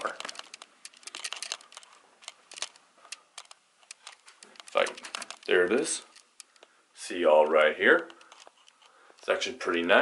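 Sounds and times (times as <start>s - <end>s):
camera handling clicks and crackles: 0.0s - 6.7s, 8.0s - 9.0s.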